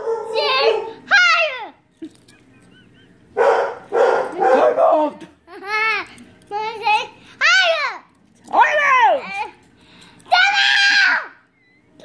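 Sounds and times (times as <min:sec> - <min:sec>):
boy screaming playfully: 0:10.3 - 0:11.4.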